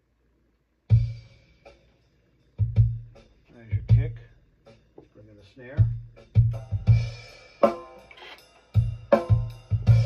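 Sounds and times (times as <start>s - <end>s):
deep kick drum thumps: 2.6s - 4.3s, 5.0s - 7.4s, 8.8s - 10.0s.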